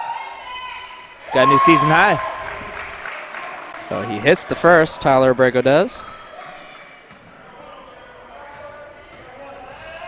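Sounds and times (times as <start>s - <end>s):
faint echoing voices: 0.0s - 10.0s.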